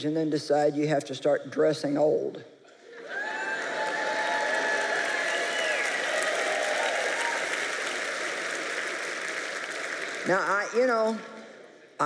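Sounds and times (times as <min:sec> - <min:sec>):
audience applauding: 0:03.0 - 0:10.9.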